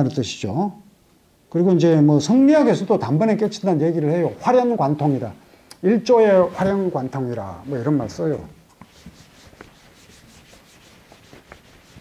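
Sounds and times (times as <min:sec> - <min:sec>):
eraser swishing on whiteboard: 0:06.4 - 0:12.0.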